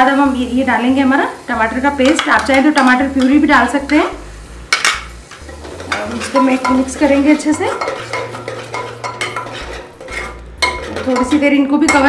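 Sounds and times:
metal spatula scraping a pot: 0:05.3 - 0:12.0.

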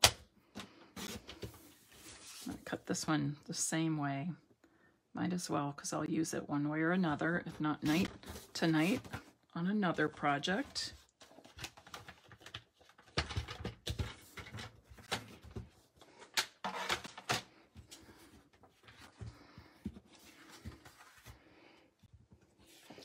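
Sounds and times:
paper rustling and sliding: 0:01.0 - 0:02.6.

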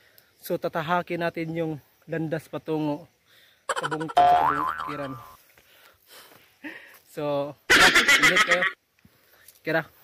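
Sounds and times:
comedic boing sound effect: 0:03.8 - 0:05.3.

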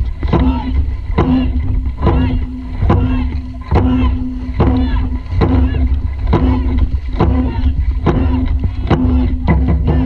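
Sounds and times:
paddle strokes: 0:00.0 - 0:10.0
wind rumble on microphone: 0:00.0 - 0:10.0.

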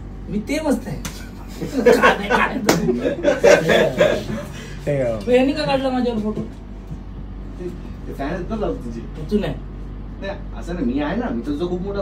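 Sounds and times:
men laughing: 0:01.4 - 0:04.8.

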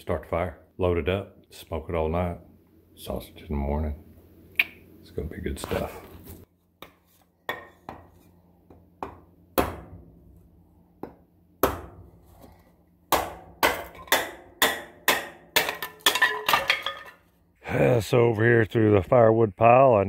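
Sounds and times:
hatchet chopping wood: 0:09.0 - 0:10.0, 0:11.0 - 0:12.0, 0:13.1 - 0:16.2.

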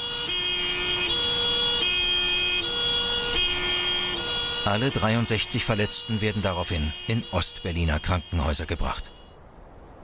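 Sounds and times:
two-tone emergency siren: 0:00.0 - 0:09.4.

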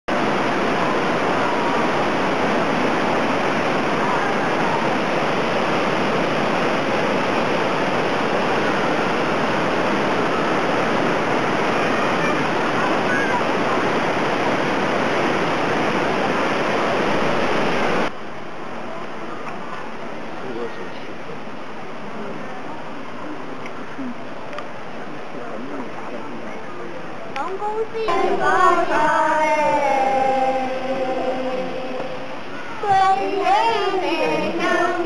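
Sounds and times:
falling water rushing: 0:00.1 - 0:35.0.

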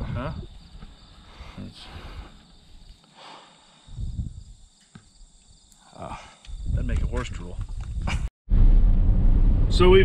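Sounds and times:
crickets chirring: 0:00.0 - 0:08.2.

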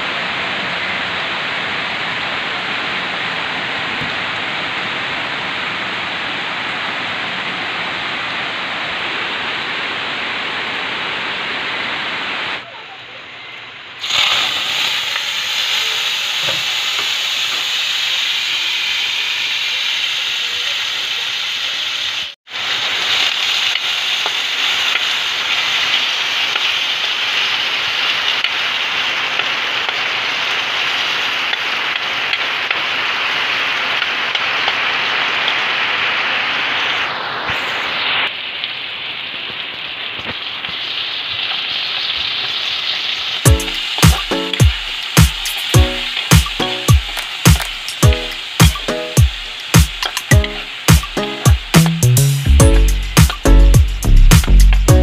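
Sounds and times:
food sizzling in a wok: 0:00.0 - 0:55.0.

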